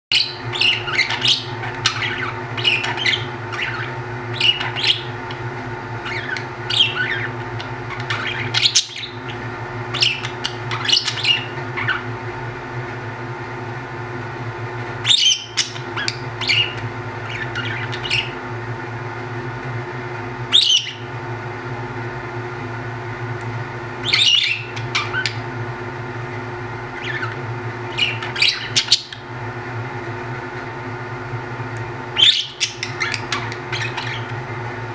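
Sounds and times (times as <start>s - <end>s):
budgerigars chirping and chattering: 0.1s - 5.4s, 6.0s - 12.1s, 15.0s - 18.4s, 20.5s - 21.1s, 24.0s - 25.4s, 27.0s - 29.3s, 32.2s - 34.4s
steady low hum: 0.1s - 34.9s.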